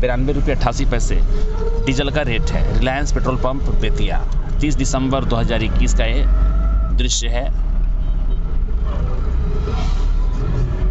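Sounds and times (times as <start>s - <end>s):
diesel engine low rumble: 0.0s - 10.9s.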